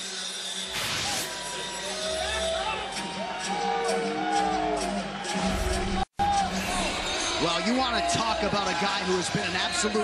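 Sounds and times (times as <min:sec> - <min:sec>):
crowd shouting: 0:01.3 - 0:10.0.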